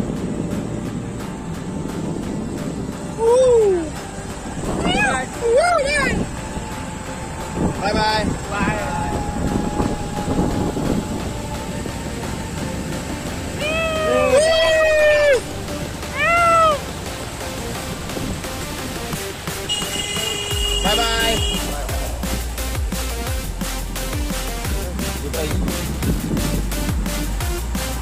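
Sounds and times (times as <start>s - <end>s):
background music: 0.0s - 28.0s.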